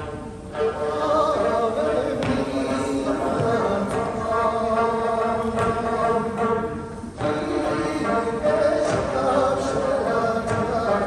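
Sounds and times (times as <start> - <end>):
strummed lute: 0.0 - 11.0
voices singing long notes: 0.0 - 11.0.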